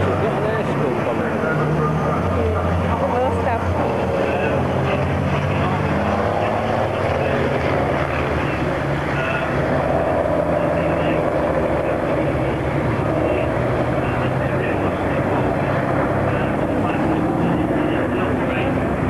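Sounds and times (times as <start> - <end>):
diesel truck engines driving past: 0.0 - 19.0.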